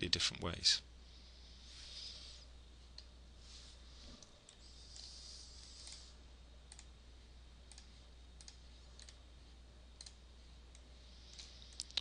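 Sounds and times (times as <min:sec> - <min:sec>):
steady low hum: 0:00.0 - 0:12.0
computer mouse clicks: 0:06.7 - 0:06.9, 0:07.7 - 0:09.2, 0:10.0 - 0:12.0.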